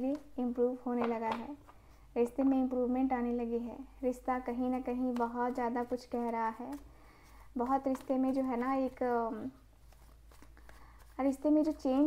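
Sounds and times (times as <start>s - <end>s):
woman's voice: 0.0s - 1.6s, 2.2s - 6.8s, 7.6s - 9.6s, 11.2s - 12.0s
cards being shuffled: 4.8s - 12.0s.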